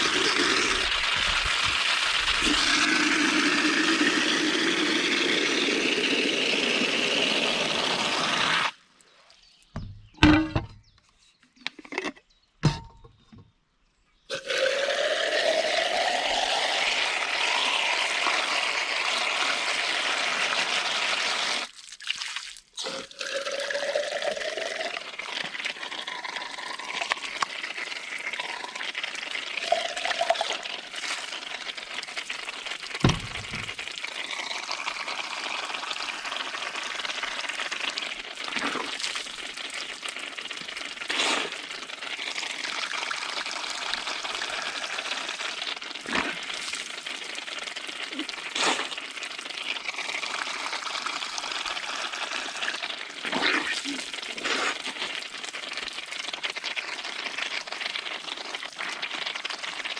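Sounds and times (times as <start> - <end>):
single thump: 33.0 - 33.7.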